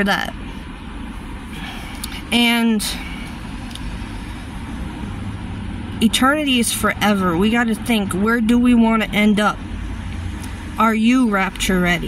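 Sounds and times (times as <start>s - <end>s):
low rumble inside a car: 0.0s - 12.0s.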